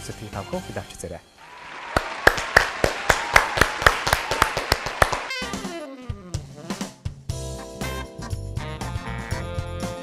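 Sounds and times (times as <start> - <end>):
hands clapping rhythmically: 1.4 - 5.7.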